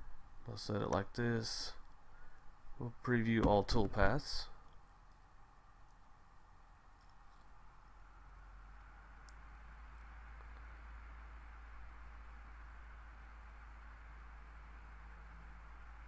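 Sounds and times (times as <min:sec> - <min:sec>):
faint hiss: 0:00.0 - 0:16.0
low hum: 0:00.0 - 0:16.0.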